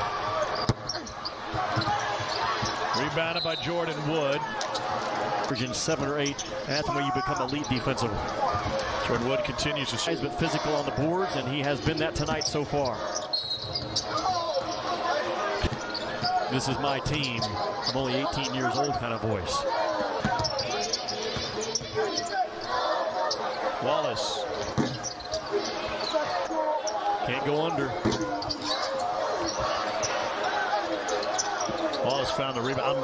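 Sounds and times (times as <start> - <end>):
arena crowd and voices: 0.0 - 33.0
sneakers squeaking on floor: 0.4 - 4.0, 11.8 - 23.8, 24.4 - 33.0.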